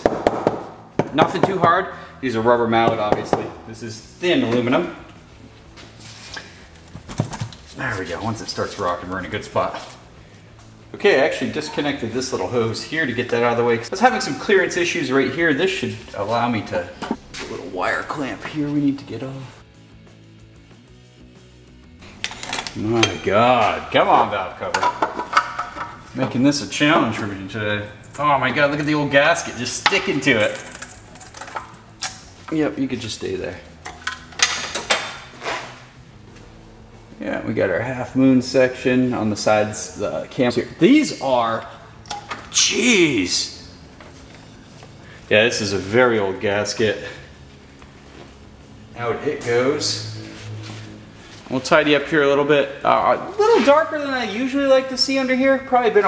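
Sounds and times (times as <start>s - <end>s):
metal tools clinking: 22.2s - 23.4s, 29.9s - 32.2s.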